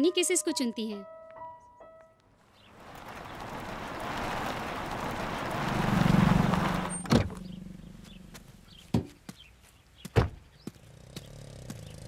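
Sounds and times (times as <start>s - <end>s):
car driving up and stopping: 2.6s - 8.9s, 10.8s - 12.0s.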